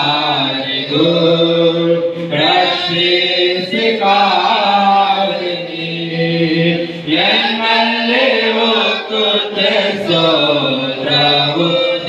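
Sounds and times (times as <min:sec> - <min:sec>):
men singing in unison: 0:00.0 - 0:12.0.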